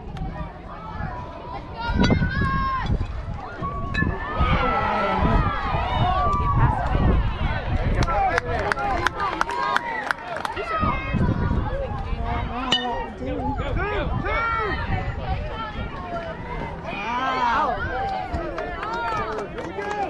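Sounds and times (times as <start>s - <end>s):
crowd shouting and cheering: 0.0s - 20.0s.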